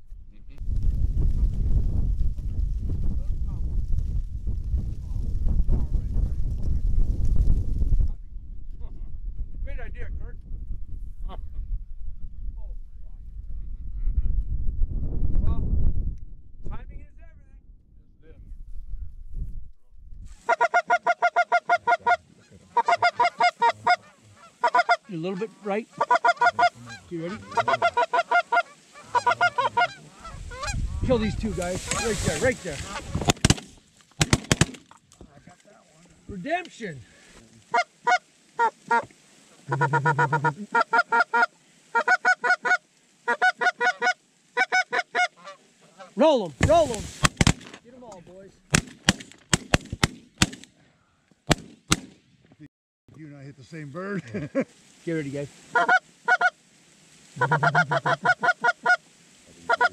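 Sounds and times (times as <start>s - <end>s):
low wind rumble: 0.0s - 20.4s, 29.1s - 33.4s
geese honking: 20.4s - 33.2s, 37.7s - 46.2s, 55.7s - 56.6s, 57.3s - 59.9s
goose call clucking notes: 20.4s - 33.2s, 37.7s - 39.1s, 39.7s - 46.2s, 55.7s - 56.6s, 57.3s - 59.9s.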